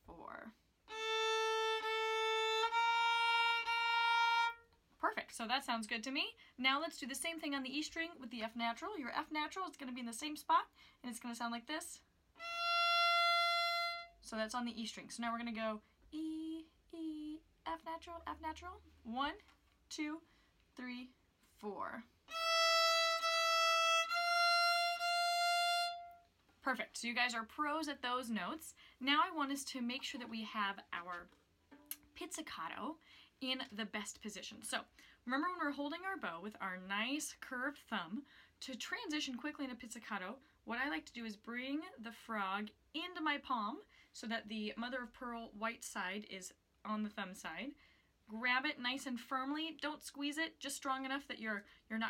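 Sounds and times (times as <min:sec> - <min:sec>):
solo violin bowing notes: 0:00.9 - 0:04.7, 0:12.4 - 0:14.2, 0:22.3 - 0:26.3.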